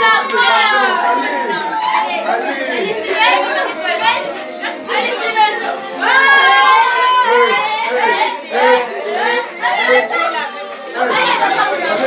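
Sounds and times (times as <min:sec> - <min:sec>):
music playing: 0:00.0 - 0:12.0
people talking and calling out: 0:00.0 - 0:12.0.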